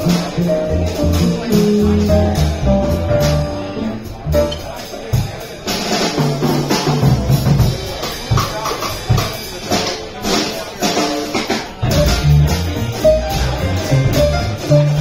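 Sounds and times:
upright bass plucking: 0:00.0 - 0:05.2, 0:11.8 - 0:15.0
drum kit with cymbals: 0:00.0 - 0:15.0.

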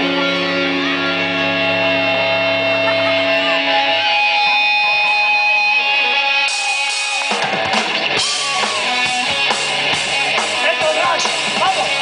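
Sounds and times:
drums: 0:00.0 - 0:12.0
electric guitars sustained notes: 0:00.0 - 0:12.0.

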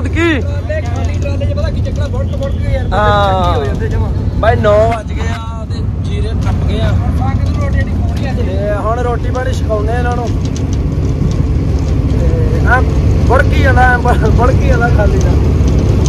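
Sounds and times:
people talking: 0:00.0 - 0:10.4, 0:12.1 - 0:15.4
vehicle engine drone: 0:00.0 - 0:16.0.

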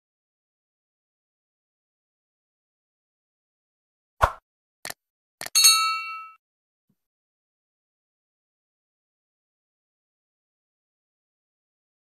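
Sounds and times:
bell-like notification ding: 0:05.6 - 0:06.4.

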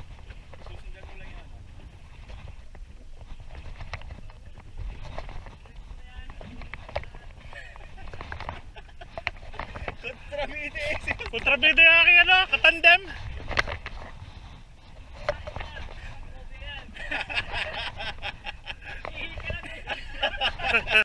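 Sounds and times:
wind rumbling on microphone: 0:00.0 - 0:21.0.

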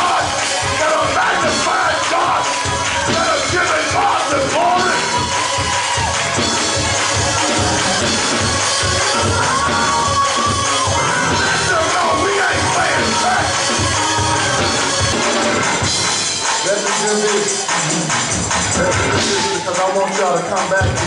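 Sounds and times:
church band music: 0:00.0 - 0:21.0
congregation cheering and clapping: 0:00.0 - 0:21.0.

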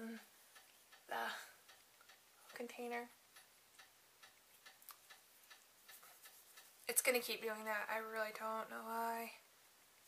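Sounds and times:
room heater ticking faintly: 0:00.0 - 0:10.0.

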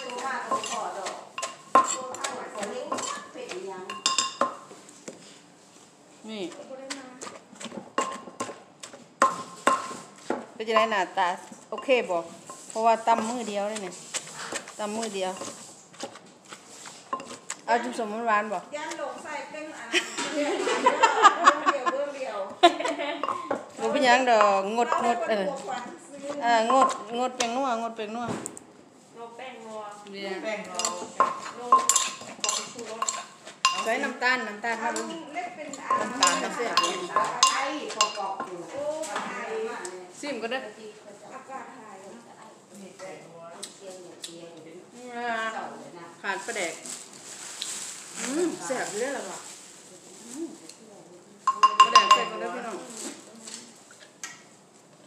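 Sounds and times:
wooden pestle pounding in mortar: 0:00.0 - 0:03.6
mortar ringing: 0:51.5 - 0:52.5.

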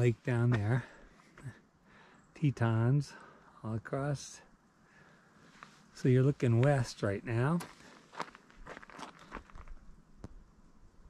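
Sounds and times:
footsteps crunching on gravel: 0:00.4 - 0:00.8, 0:06.4 - 0:09.8.

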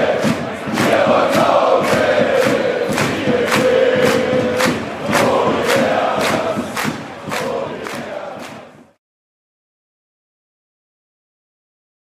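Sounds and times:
crowd singing a chant: 0:00.0 - 0:09.0
steady drum beat: 0:00.0 - 0:09.0.

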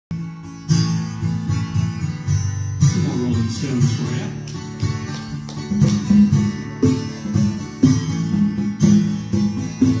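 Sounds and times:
acoustic guitar strumming: 0:00.1 - 0:10.0.

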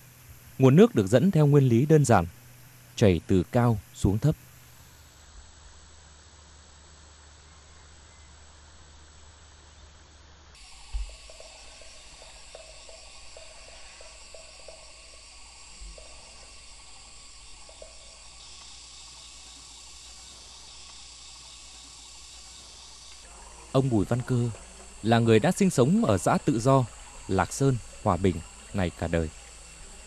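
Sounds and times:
faint hiss: 0:00.0 - 0:30.0
insects chirping: 0:00.0 - 0:30.0.

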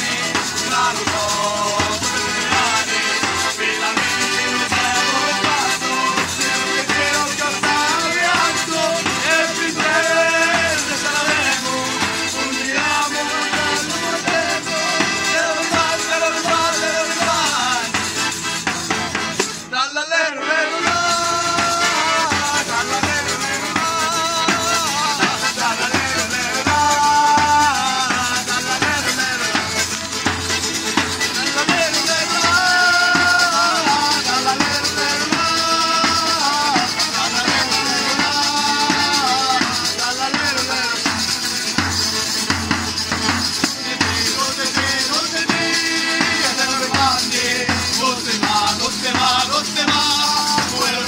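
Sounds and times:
tambourine jingles: 0:00.0 - 0:19.6, 0:20.8 - 0:51.0
accordion: 0:00.0 - 0:51.0
acoustic guitar: 0:00.0 - 0:51.0
men singing together: 0:00.0 - 0:51.0.

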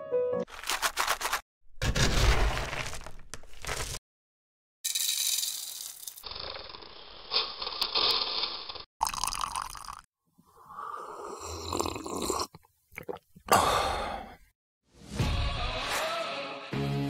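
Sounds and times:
coffee beans pouring into tray: 0:04.9 - 0:08.8
person slurping hot coffee: 0:10.6 - 0:13.2.

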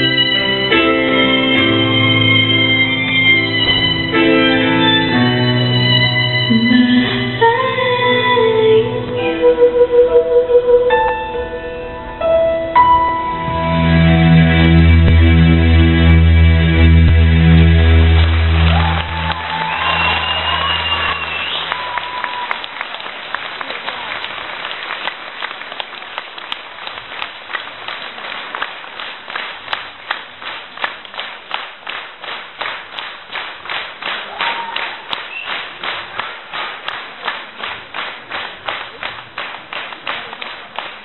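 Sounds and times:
rhythmic clapping in unison: 0:00.0 - 0:06.6, 0:17.0 - 0:41.0
audience applauding and cheering: 0:00.0 - 0:06.7, 0:16.8 - 0:41.0
music: 0:00.0 - 0:21.8.

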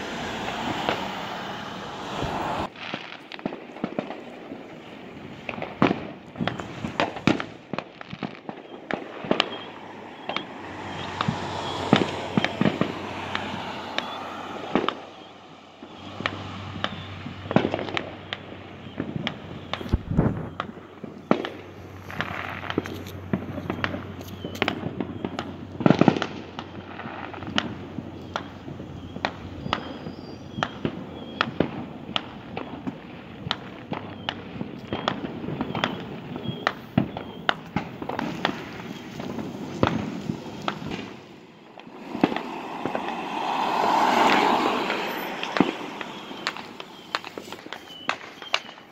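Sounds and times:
fireworks bangs and pops: 0:00.0 - 0:48.9.

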